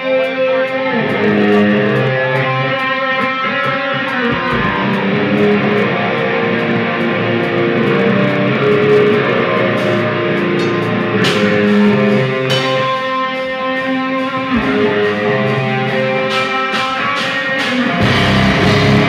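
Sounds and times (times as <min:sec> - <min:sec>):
bass guitar: 0:00.0 - 0:19.0
drum kit: 0:00.0 - 0:19.0
electric guitar: 0:00.0 - 0:19.0
cymbal strikes: 0:04.9 - 0:19.0.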